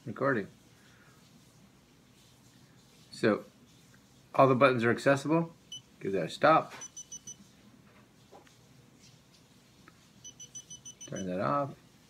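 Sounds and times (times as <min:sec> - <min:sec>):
camera beeping: 0:06.8 - 0:07.4, 0:10.2 - 0:11.3.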